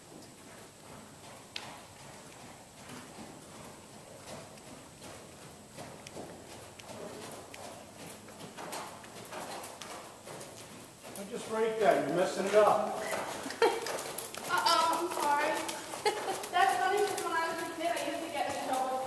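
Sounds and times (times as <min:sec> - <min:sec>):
horse hoofbeats on dirt: 0:00.0 - 0:19.0.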